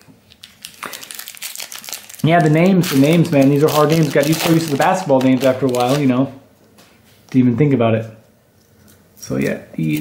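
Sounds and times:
trading cards rustling and crackling: 0:00.3 - 0:06.2.

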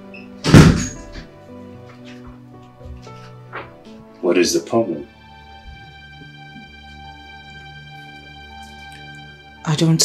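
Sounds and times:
background music: 0:00.0 - 0:10.0
door shutting with thud: 0:00.4 - 0:01.3.

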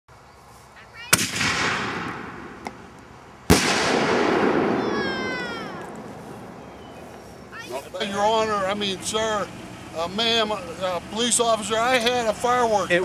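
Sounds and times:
firework bangs: 0:01.1 - 0:02.9, 0:03.5 - 0:07.7.

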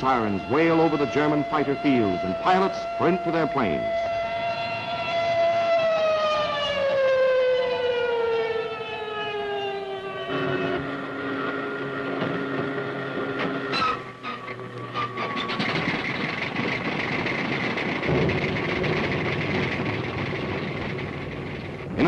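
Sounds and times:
air-raid siren winding down: 0:00.0 - 0:22.0
fighter plane engine running: 0:00.0 - 0:22.0
low hum: 0:09.9 - 0:22.0.

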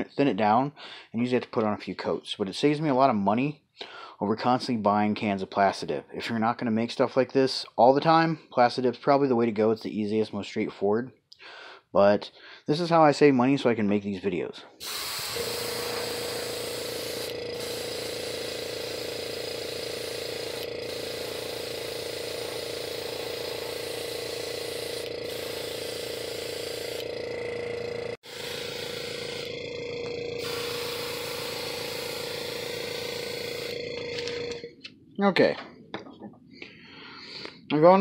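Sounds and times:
airbrush spraying hiss: 0:14.8 - 0:27.0
airbrush compressor humming: 0:14.8 - 0:34.8.

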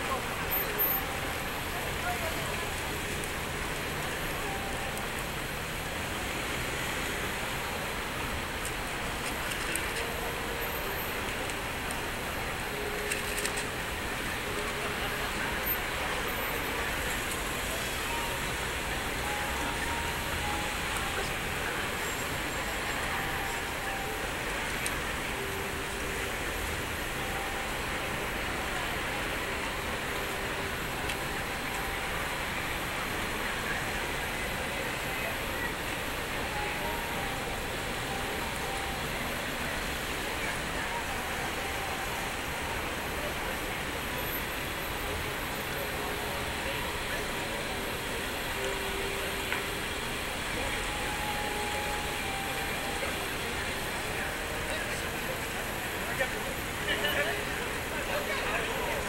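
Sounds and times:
crowd noise: 0:00.0 - 0:59.0
faint voices: 0:00.0 - 0:59.0
traffic: 0:00.0 - 0:59.0.

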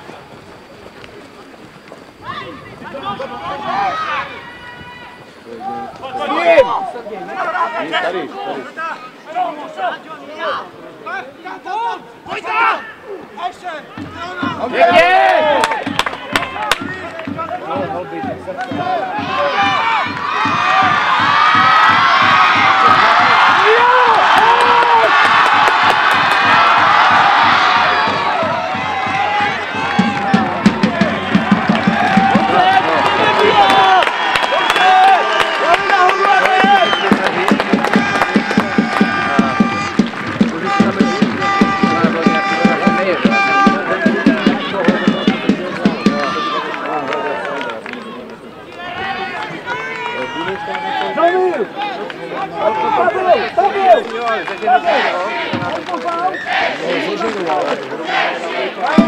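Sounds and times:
crowd cheering and shouting: 0:02.2 - 0:59.0
rhythmic beating and clapping: 0:14.0 - 0:52.3.

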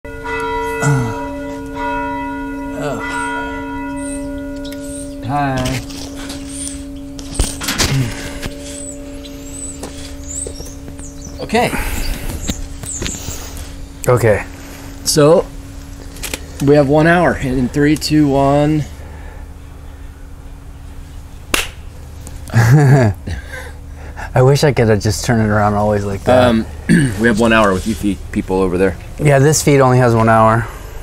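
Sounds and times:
birds chirping: 0:00.1 - 0:22.6, 0:23.5 - 0:31.0
steady low hum: 0:00.1 - 0:31.0
finger snap: 0:21.5 - 0:21.8.

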